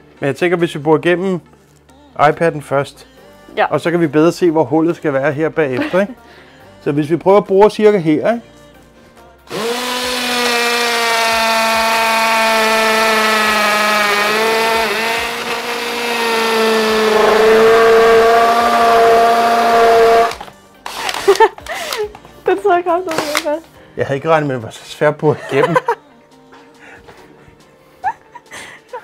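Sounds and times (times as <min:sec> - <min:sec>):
cordless drill boring into glass: 0:09.5 - 0:21.5, 0:23.1 - 0:23.5.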